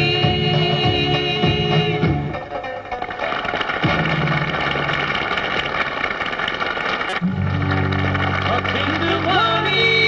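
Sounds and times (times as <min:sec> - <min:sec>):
strummed banjo: 0:00.0 - 0:05.3, 0:07.1 - 0:10.0
live band playing: 0:00.0 - 0:06.3, 0:06.9 - 0:10.0.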